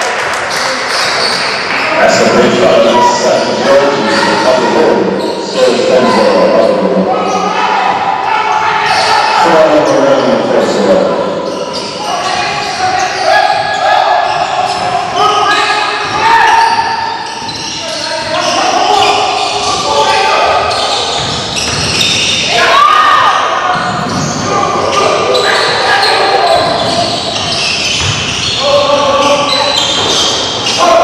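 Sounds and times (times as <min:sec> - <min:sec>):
voices echoing in a hall: 0:00.0 - 0:31.0.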